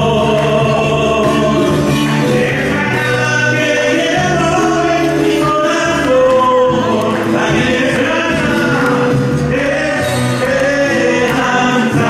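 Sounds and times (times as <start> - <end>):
man singing into a microphone: 0.0 - 12.0
musical accompaniment: 0.0 - 12.0.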